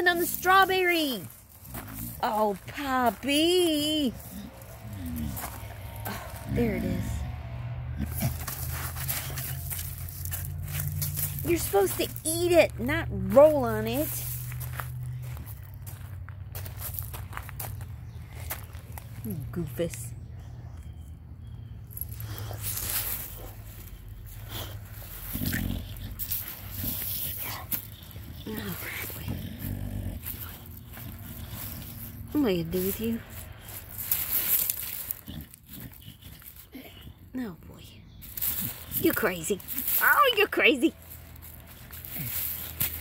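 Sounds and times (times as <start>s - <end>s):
gravel crunching: 0.0s - 43.0s
low rumble: 1.2s - 35.2s.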